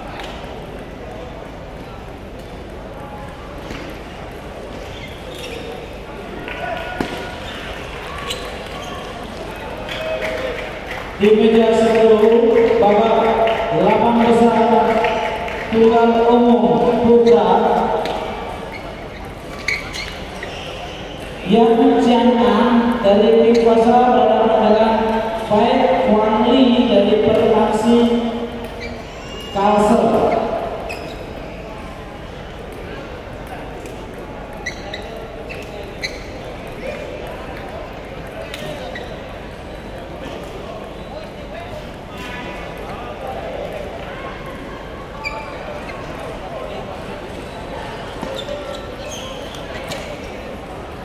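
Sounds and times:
murmur of crowd in hall: 0.0 - 51.0
man speaking over public address: 11.2 - 18.2, 21.4 - 28.6, 29.5 - 30.8.

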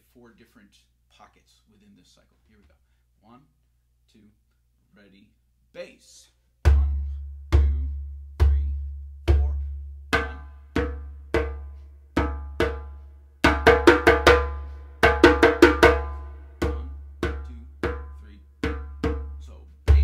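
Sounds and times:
deep djembe bass stroke: 6.7 - 20.0
djembe open tones: 6.7 - 20.0
sharp djembe slaps: 10.2 - 20.0.

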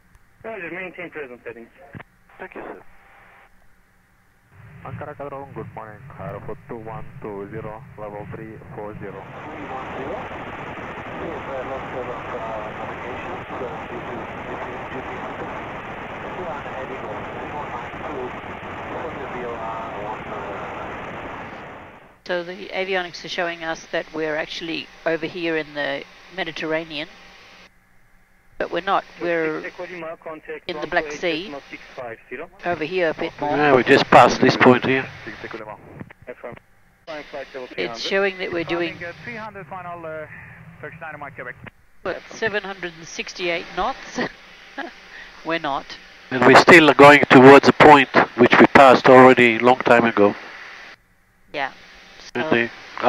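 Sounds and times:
radio static hiss: 0.0 - 27.7, 28.6 - 53.0
faint radio voices: 0.4 - 3.4, 4.8 - 21.6, 28.7 - 50.9, 52.2 - 53.0
low cabin drone: 3.9 - 47.4.

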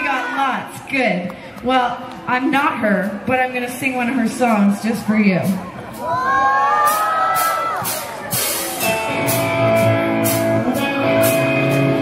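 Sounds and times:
bass guitar: 7.5 - 12.0
electric guitar chords: 8.4 - 12.0.

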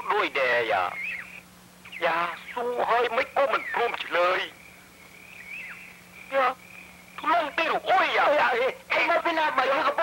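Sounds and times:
faint high wavering whine: 0.0 - 10.0.

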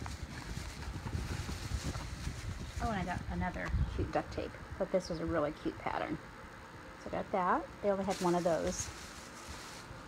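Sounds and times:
camera handling rumble: 0.0 - 2.8.

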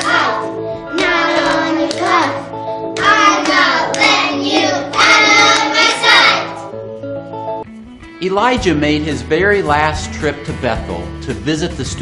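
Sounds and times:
girls singing: 0.0 - 6.7
backing track music: 0.0 - 12.0.

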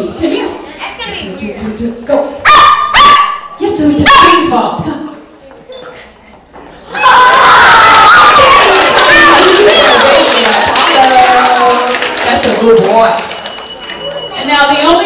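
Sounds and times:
dog yipping: 2.5 - 4.4
many children's voices: 4.9 - 15.0.

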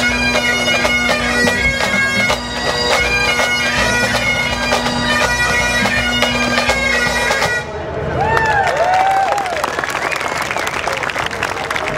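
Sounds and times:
whooping shouts: 8.2 - 9.6
crowd applauding: 8.2 - 11.9.

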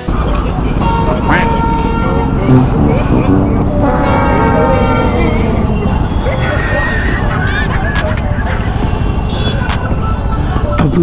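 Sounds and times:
motorbike and car engines: 0.0 - 11.0
vehicle horn honks: 0.7 - 6.6, 8.9 - 9.7.

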